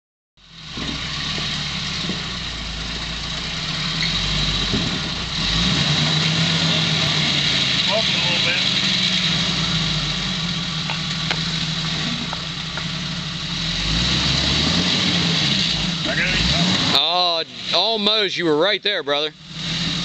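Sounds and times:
engine running at low revs: 0:00.4 - 0:20.0.

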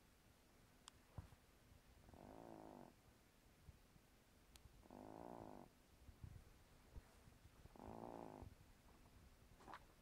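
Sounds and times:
cat snoring softly: 0:02.1 - 0:03.0, 0:04.8 - 0:05.7, 0:07.7 - 0:08.6.

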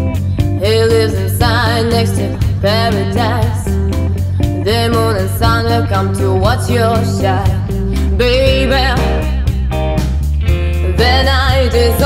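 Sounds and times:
electric guitar: 0:00.0 - 0:12.0
rock band playing: 0:00.0 - 0:12.0.

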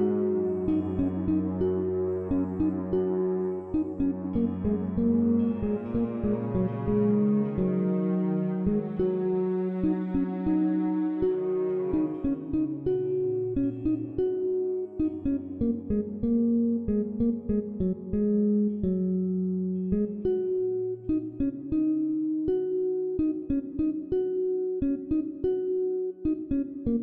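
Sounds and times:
ambient instrumental music: 0:00.0 - 0:24.6.

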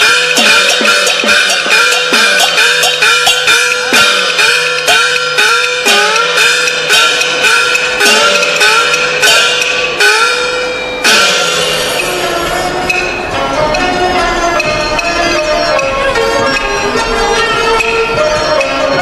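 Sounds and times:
cymbal clashes: 0:00.0 - 0:13.5.

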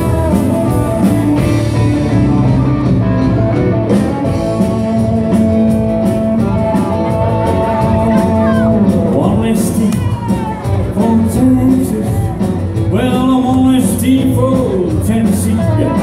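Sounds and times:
electric guitars: 0:00.0 - 0:16.0
rock band playing: 0:00.0 - 0:16.0.

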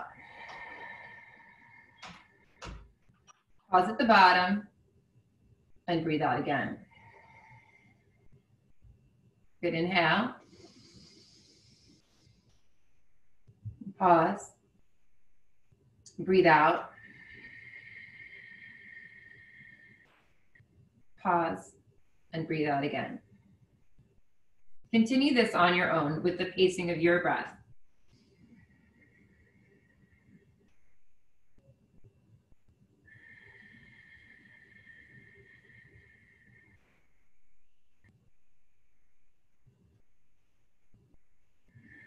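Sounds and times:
long slow breath out: 0:00.0 - 0:02.8, 0:06.9 - 0:08.2, 0:10.4 - 0:12.3, 0:16.8 - 0:20.3, 0:33.1 - 0:37.6
faint steady whistle: 0:16.8 - 0:20.6, 0:33.1 - 0:39.5.

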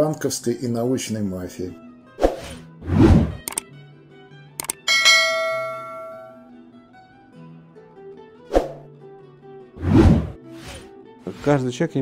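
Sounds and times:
soft background music: 0:00.0 - 0:12.0
whoosh: 0:02.2 - 0:03.5, 0:09.8 - 0:10.9
mouse clicks: 0:03.4 - 0:03.6, 0:04.6 - 0:04.8
bell chime: 0:04.8 - 0:06.5.

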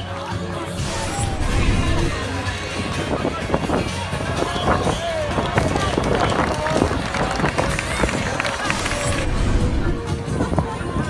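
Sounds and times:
players and spectators shouting: 0:00.6 - 0:02.7.

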